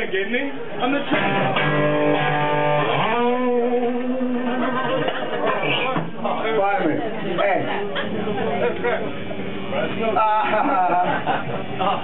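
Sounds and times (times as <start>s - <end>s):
sliding pitched note: 1.2s - 4.6s.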